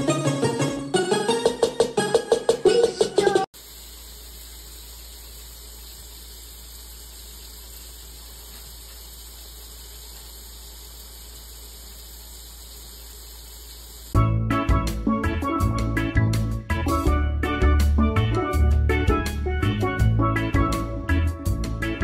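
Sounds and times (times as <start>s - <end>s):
steady hiss: 3.6s - 14.2s.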